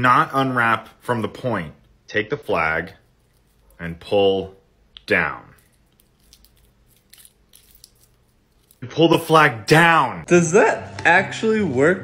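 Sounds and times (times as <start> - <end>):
foil wrapper crinkling: 5.5 - 8.8.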